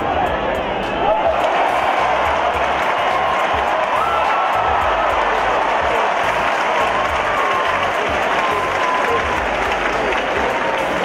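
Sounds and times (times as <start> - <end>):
music playing: 0.0 - 11.0
stadium crowd applauding: 1.0 - 11.0.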